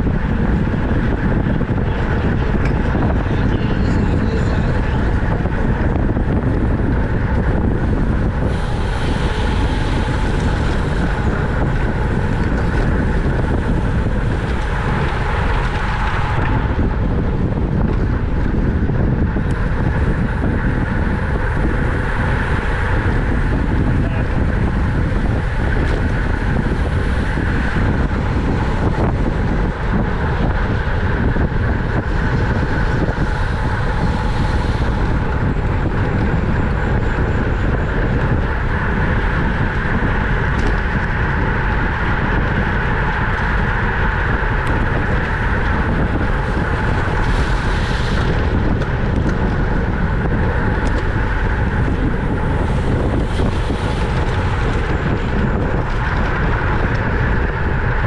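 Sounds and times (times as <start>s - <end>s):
wind rumble on microphone: 0.0s - 58.0s
road hiss: 7.9s - 17.5s, 19.4s - 37.2s, 38.0s - 58.0s.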